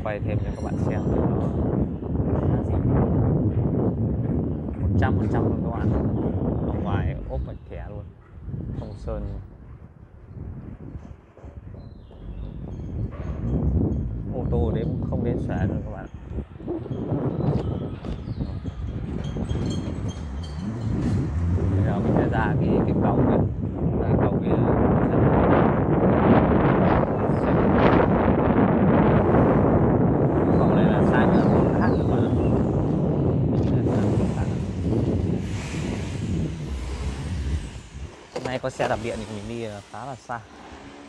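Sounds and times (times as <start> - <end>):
wind rumbling on microphone: 0.0 - 41.0
tyre and road noise: 10.4 - 41.0.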